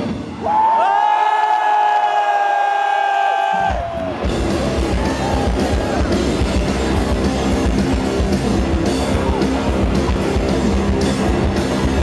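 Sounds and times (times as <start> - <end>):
crowd cheering: 0.0 - 12.0
live rock band: 3.5 - 12.0.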